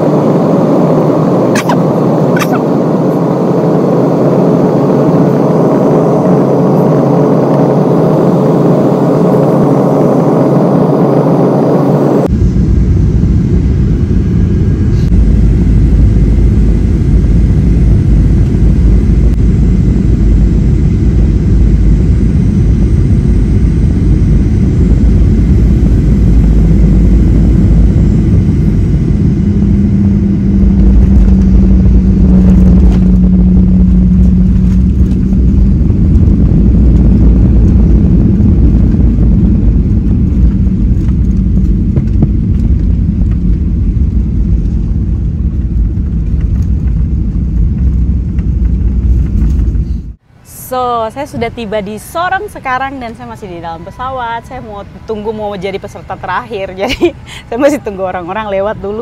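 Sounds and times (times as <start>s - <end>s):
jet engine and airflow rumble: 0.0s - 59.0s
steady hum: 0.0s - 59.0s.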